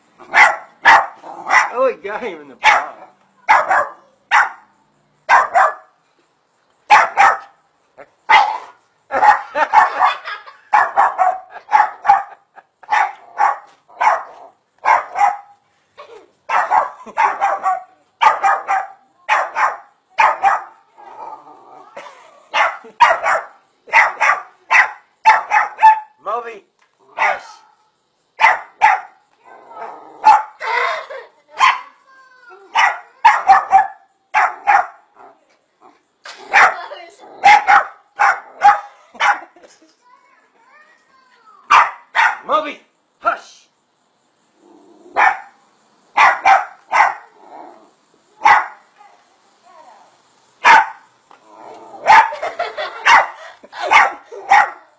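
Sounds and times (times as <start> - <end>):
dog barking: 0.2 - 1.9, 2.6 - 4.7, 5.3 - 5.9, 6.9 - 7.6, 8.3 - 15.6, 16.5 - 20.8, 22.5 - 26.1, 27.2 - 27.7, 28.4 - 29.2, 29.8 - 30.6, 31.6 - 31.9, 32.7 - 35.0, 36.5 - 39.7, 41.7 - 42.5, 45.2 - 45.6, 46.2 - 47.4, 48.4 - 48.8, 50.6 - 51.1, 52.0 - 54.9.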